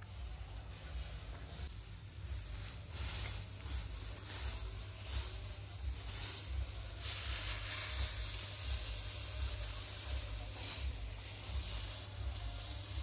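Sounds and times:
dry straw rustling and crackling: 0:00.0 - 0:13.0.

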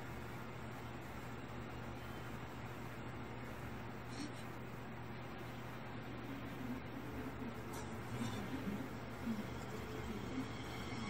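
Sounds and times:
muffled soundtrack from laptop speakers: 0:00.0 - 0:11.0
steady low hum: 0:00.0 - 0:11.0.

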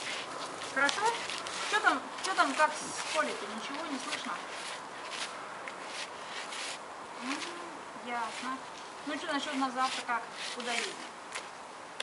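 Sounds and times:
bear cub digging in dry dirt: 0:00.0 - 0:11.1.

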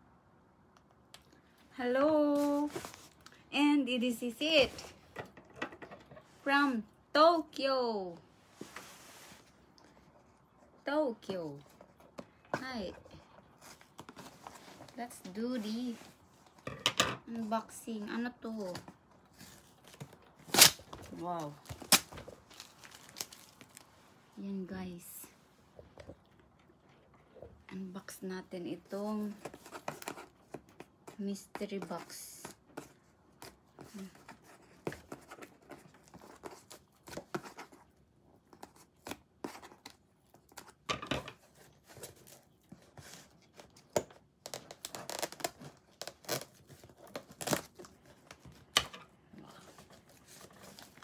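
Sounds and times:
packing tape ripping off cardboard: 0:19.8 - 0:23.8, 0:43.5 - 0:47.9.

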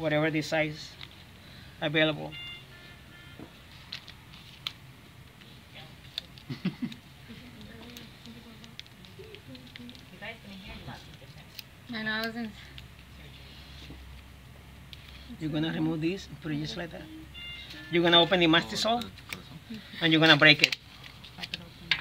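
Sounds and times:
quiet voices murmuring: 0:05.3 - 0:14.1.

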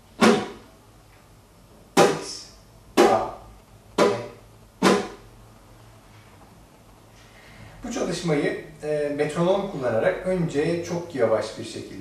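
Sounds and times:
flamenco guitar strums: 0:00.1 - 0:00.6, 0:02.0 - 0:02.4, 0:03.0 - 0:03.4, 0:04.0 - 0:05.3.

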